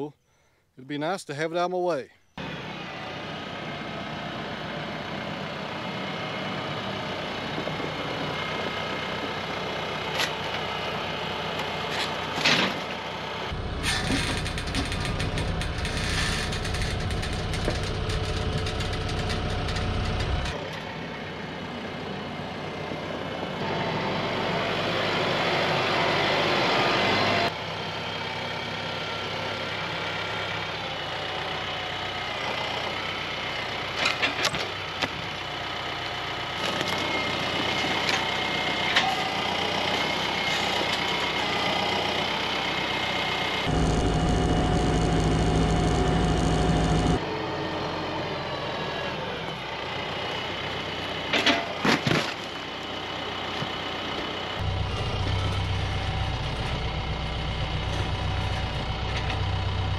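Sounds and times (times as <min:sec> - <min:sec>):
tractor diesel engine running: 0:02.4 - 0:59.9.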